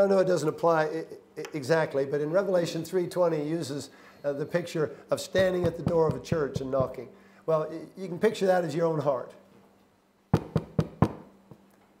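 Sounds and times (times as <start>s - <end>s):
knuckles knocking on wood: 5.4s - 7.0s, 10.4s - 11.2s.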